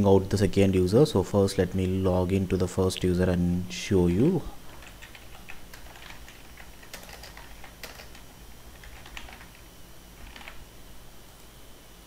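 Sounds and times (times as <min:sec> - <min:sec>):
computer keyboard typing: 0:04.7 - 0:09.6, 0:10.2 - 0:10.6.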